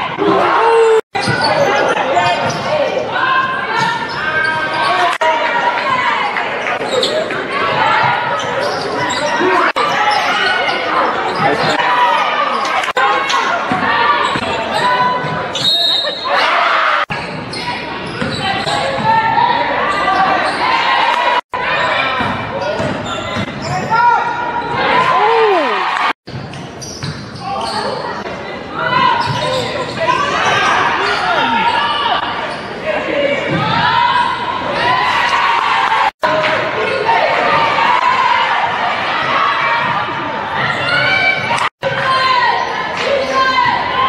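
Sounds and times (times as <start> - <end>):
crowd calling and shouting: 0.0 - 44.0.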